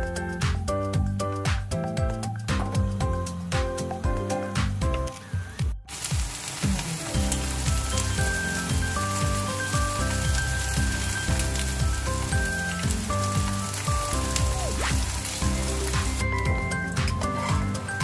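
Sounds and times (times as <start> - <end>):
background music: 0.0 - 18.0
pancake sizzling in oil: 5.9 - 18.0.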